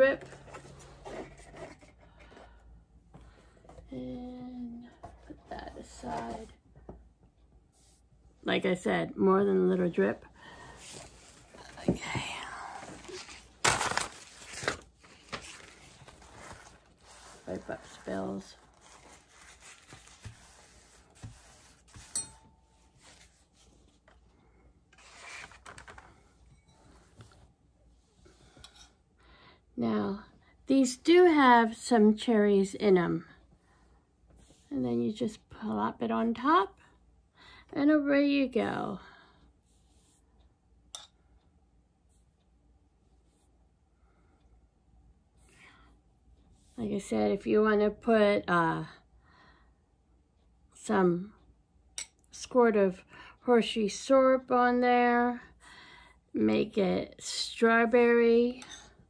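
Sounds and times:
cardboard box rustling and scraping: 0.2 - 2.0
paper towel rubbing: 15.4 - 22.2.

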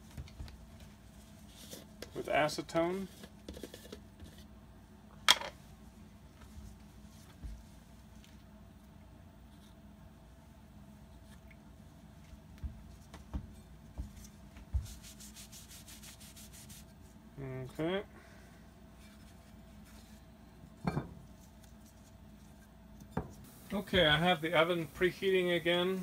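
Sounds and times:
cloth rag wiping metal: 14.2 - 17.2, 23.4 - 26.0.

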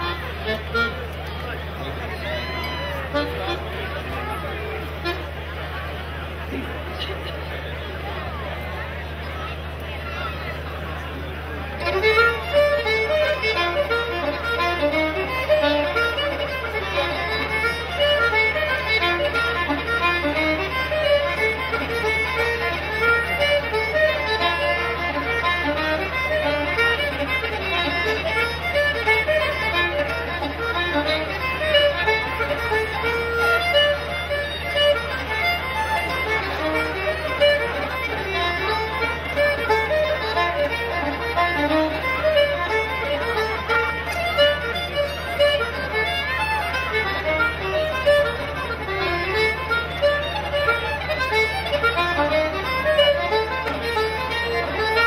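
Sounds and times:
button accordion playing: 0.0 - 55.0
fiddle playing: 0.0 - 55.0.

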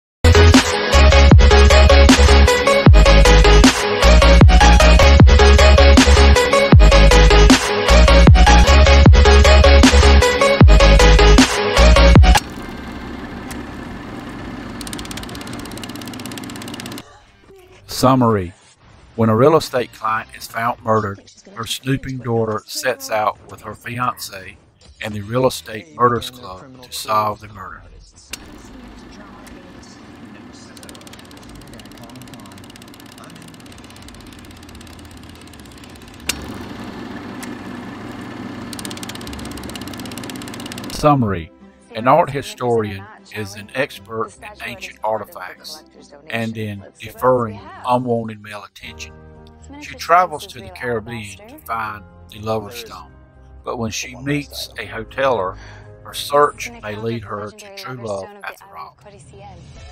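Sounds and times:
film projector running: 0.2 - 17.5, 28.3 - 41.3
electronic dance music: 0.3 - 12.5
fast even clicking: 11.4 - 17.2, 28.4 - 41.0
mechanical whir: 11.8 - 17.5, 28.3 - 41.1.

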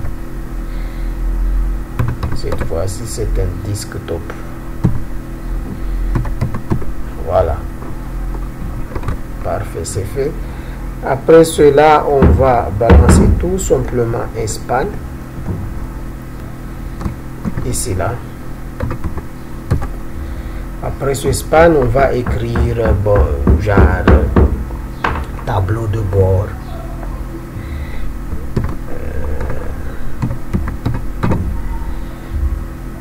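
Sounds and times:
low background hum: 0.0 - 33.0
keyboard keystrokes: 18.8 - 19.9.

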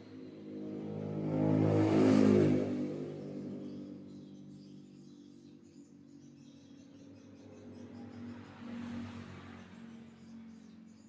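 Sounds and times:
motor vehicle passing by: 0.0 - 5.1, 7.1 - 11.0.

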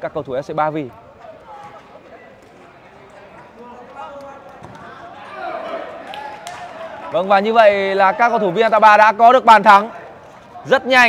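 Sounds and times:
players shouting: 3.4 - 11.0.

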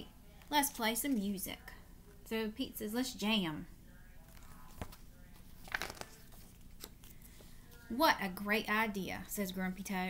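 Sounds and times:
paper page rustling: 4.2 - 7.9.

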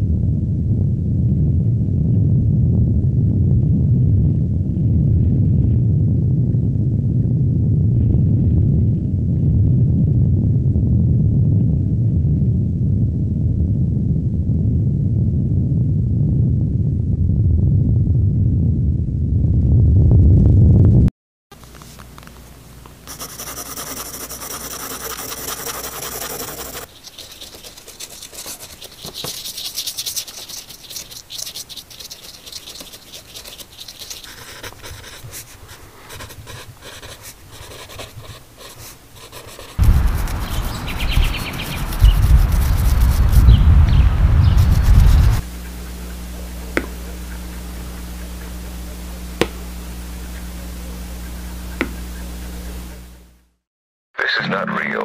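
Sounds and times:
loud low rumble: 0.0 - 21.1
steady low hum: 0.0 - 53.6
pencil scratching on paper: 23.1 - 53.0.

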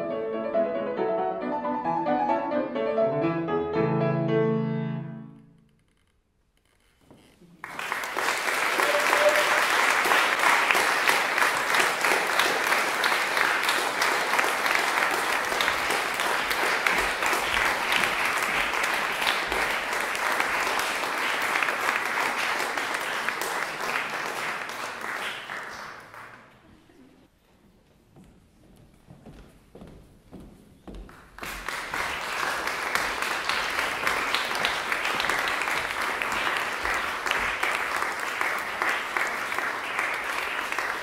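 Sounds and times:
audience applauding: 7.6 - 26.9, 31.1 - 41.0.

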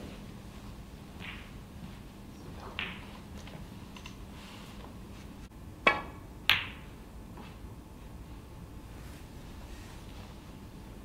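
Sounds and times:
quiet arena room tone: 0.0 - 11.0
snooker balls clicking: 1.2 - 1.6, 2.4 - 4.2, 5.8 - 6.9.

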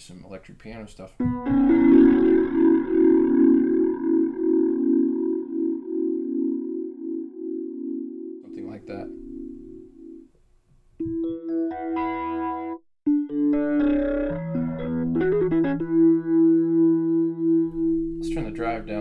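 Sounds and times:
organ chord with rotary wobble: 1.2 - 10.2, 11.4 - 19.0.

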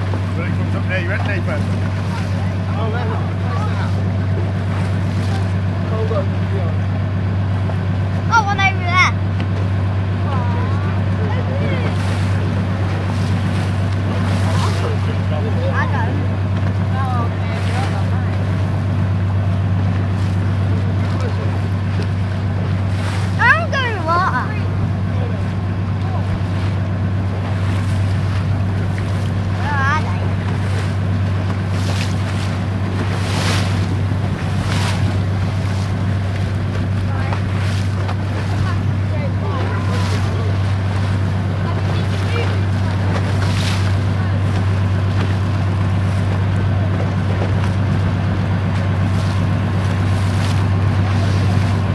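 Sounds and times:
speedboat engine idling: 0.0 - 51.9
water lapping against hull: 0.0 - 51.9.

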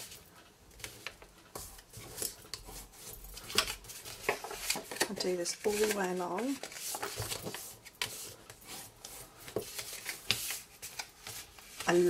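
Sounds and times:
paper sliding and crinkling: 0.8 - 12.0.

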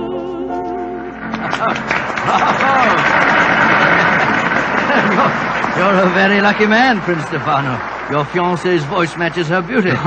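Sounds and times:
audience applauding: 1.2 - 10.0.

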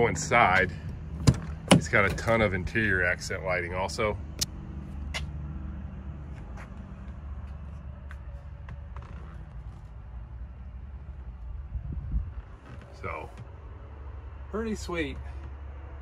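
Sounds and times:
diesel truck engine idling: 0.0 - 16.0.

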